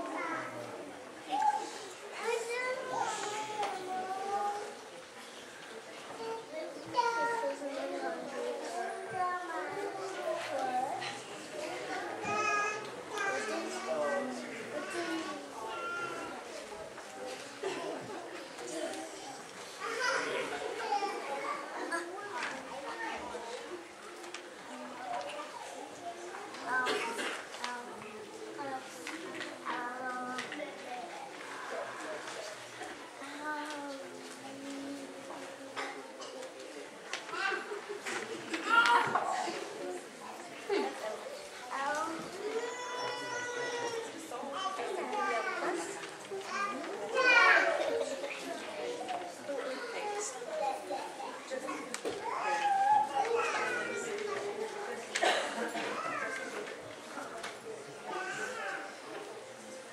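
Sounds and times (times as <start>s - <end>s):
children chattering: 0.0s - 59.9s.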